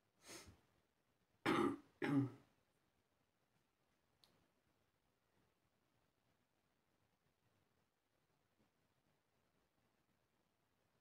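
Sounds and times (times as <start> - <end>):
person clearing throat: 1.4 - 2.4.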